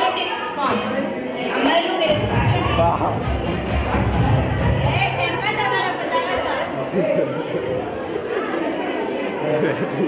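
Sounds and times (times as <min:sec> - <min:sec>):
chatter of voices: 0:00.0 - 0:10.0
background music: 0:02.1 - 0:05.6.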